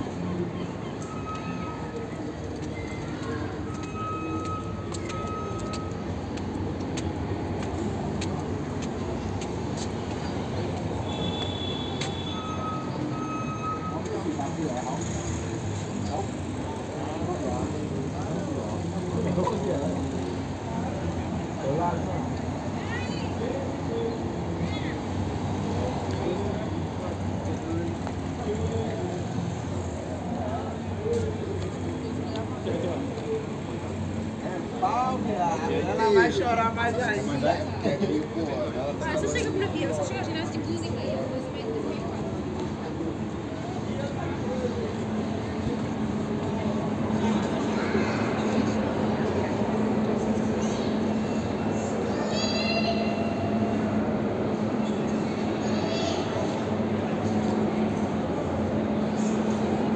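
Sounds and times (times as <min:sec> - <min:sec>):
crowd chattering: 0:00.0 - 0:59.9
passing traffic: 0:00.0 - 0:59.9
short high beeps: 0:03.7 - 0:06.0, 0:11.4 - 0:14.1.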